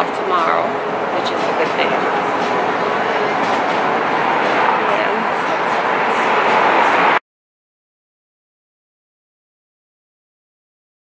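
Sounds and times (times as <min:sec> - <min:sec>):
roar of street noise: 0:00.5 - 0:07.2.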